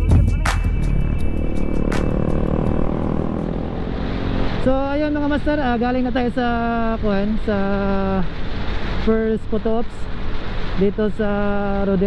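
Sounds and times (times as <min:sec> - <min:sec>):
motor scooter engine: 0:00.9 - 0:04.7.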